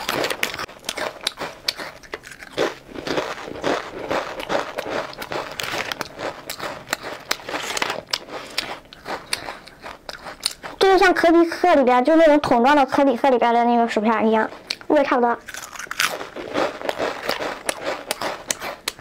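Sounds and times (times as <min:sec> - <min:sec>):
potato chips being chewed: 0:00.0 - 0:10.9, 0:14.4 - 0:19.0.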